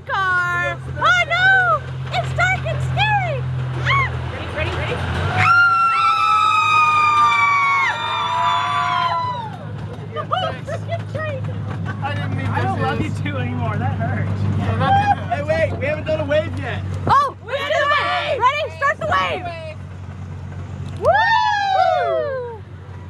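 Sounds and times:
miniature train engine hum: 0:00.0 - 0:23.0
riders whooping: 0:03.8 - 0:04.2, 0:05.3 - 0:11.4, 0:14.6 - 0:15.6, 0:20.9 - 0:23.0
voices holding long woo: 0:05.3 - 0:10.8, 0:21.0 - 0:23.0.

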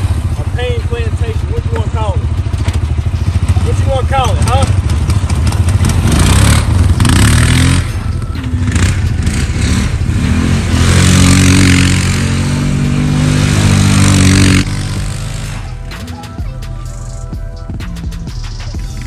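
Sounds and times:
atv engine revving: 0:00.0 - 0:16.2.

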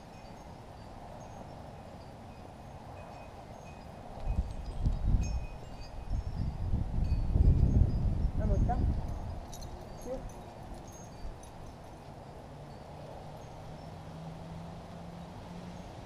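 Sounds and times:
low outdoor background: 0:00.0 - 0:16.0.

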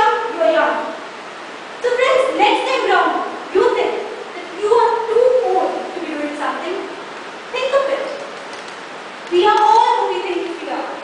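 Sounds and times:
woman speaking: 0:00.0 - 0:01.0, 0:01.8 - 0:08.4, 0:09.3 - 0:11.0.

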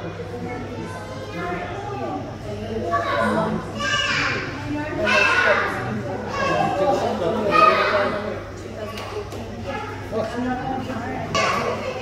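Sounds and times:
children chattering and calling: 0:00.0 - 0:12.0.

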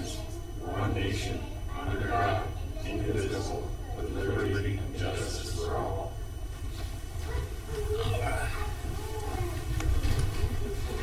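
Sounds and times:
low room rumble: 0:00.0 - 0:11.0
people shuffling in chairs: 0:06.4 - 0:11.0.

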